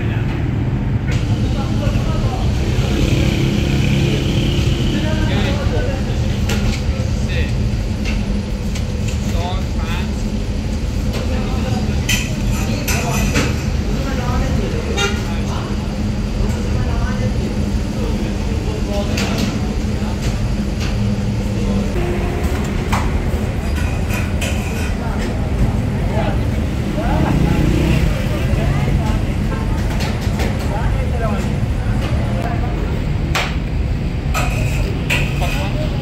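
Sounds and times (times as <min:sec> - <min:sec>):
people talking: 0:00.0 - 0:00.5, 0:01.1 - 0:08.2, 0:09.2 - 0:10.3, 0:11.1 - 0:33.6, 0:34.3 - 0:36.0
low mechanical hum: 0:00.0 - 0:36.0.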